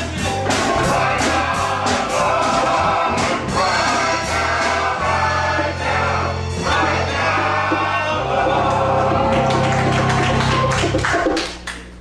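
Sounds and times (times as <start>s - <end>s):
gospel singing with drums: 0.0s - 11.0s.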